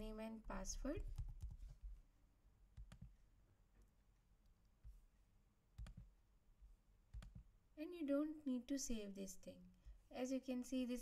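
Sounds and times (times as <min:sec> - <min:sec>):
computer mouse clicks: 0:02.8 - 0:03.2, 0:05.8 - 0:06.1, 0:07.1 - 0:07.5.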